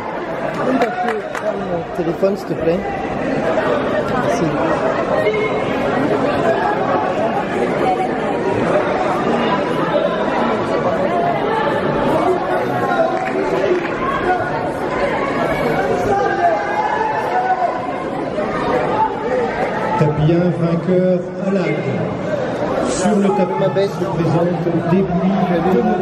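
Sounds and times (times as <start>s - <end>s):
chatter of many voices: 0.0s - 26.0s.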